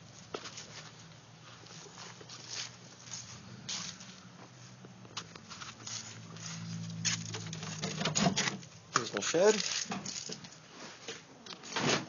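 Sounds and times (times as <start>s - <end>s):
rustling and scuffing: 0.0s - 12.0s.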